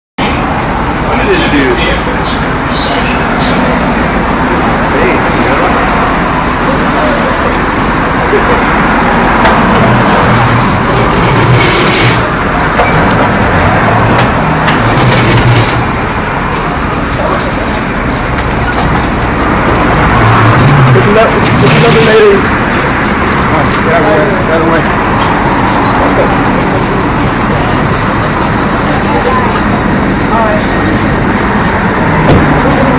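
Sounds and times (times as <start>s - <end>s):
indistinct voices: 0.2s - 32.9s
loud traffic noise: 0.2s - 32.9s.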